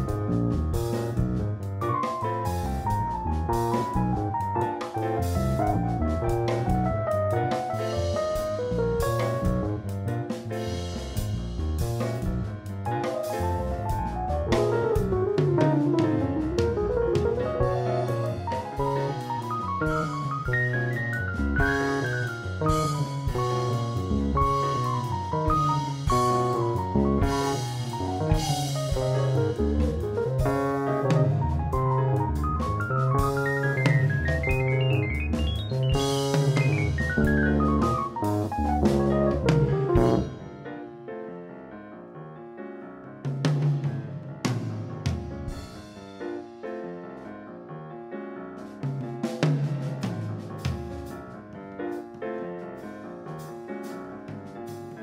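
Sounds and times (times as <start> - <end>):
jazz trio playing: 0.0 - 55.0.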